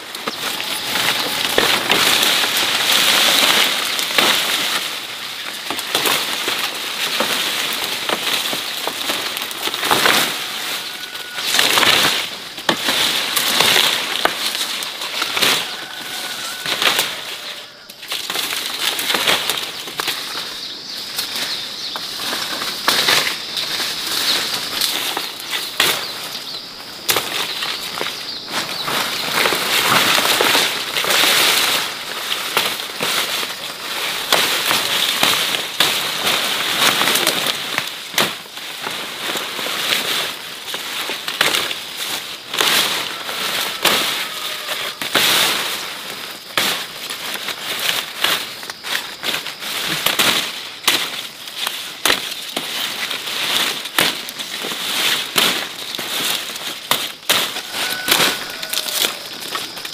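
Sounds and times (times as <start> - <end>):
grass stalks rustling and crackling: 0.0 - 59.9
stems snapping: 0.0 - 59.9.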